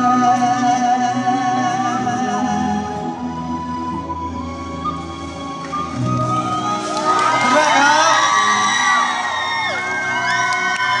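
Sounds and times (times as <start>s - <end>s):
fans screaming and cheering: 6.4s - 11.0s.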